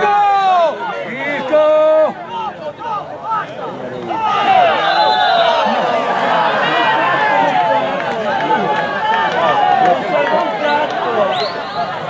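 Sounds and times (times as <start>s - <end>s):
men shouting over one another: 0.0s - 11.3s.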